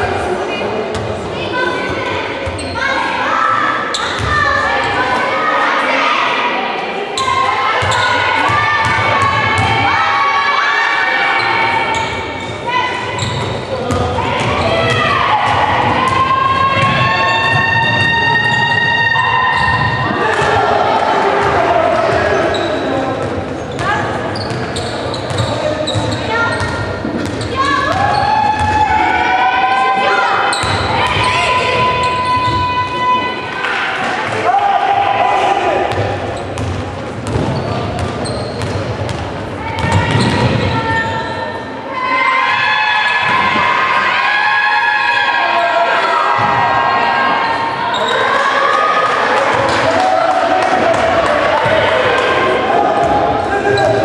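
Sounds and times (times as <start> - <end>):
people shouting and calling out: 0.0 - 24.4, 25.5 - 36.4, 39.6 - 54.0
basketball bouncing on gym floor: 35.9 - 40.7.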